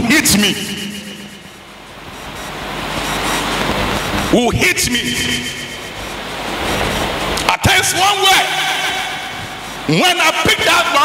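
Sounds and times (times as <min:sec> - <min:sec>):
rushing hiss-like noise: 0:00.3 - 0:10.6.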